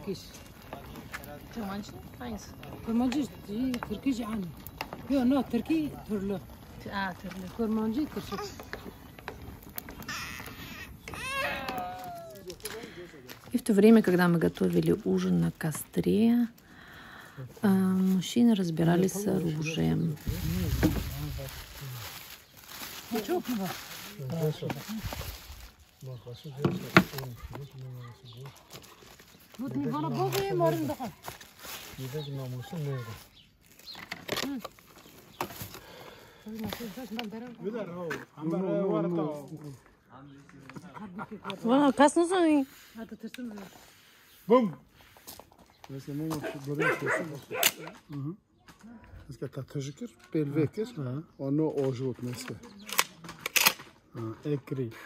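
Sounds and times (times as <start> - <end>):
harsh caw-like animal call: 10.1 - 11.6
plastic bag crinkling: 19.0 - 35.8.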